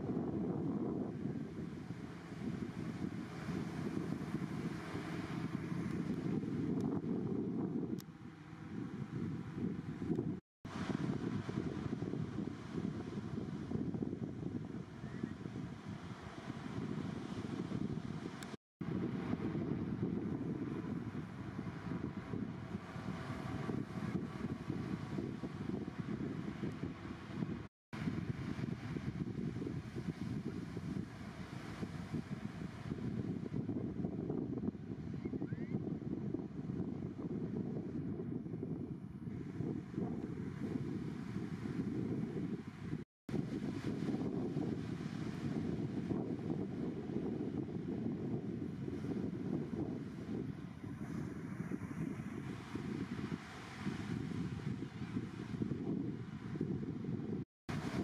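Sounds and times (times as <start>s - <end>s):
wind buffeting microphone: 0.0s - 58.0s
surf breaking on beach: 0.9s - 6.8s, 10.7s - 34.1s, 39.3s - 56.8s, 57.7s - 58.0s.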